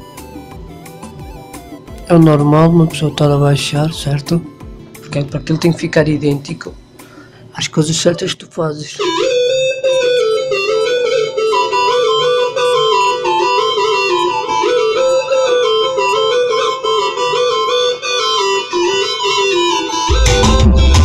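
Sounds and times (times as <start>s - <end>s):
synthesizer melody: 0.0s - 6.9s, 9.0s - 21.0s.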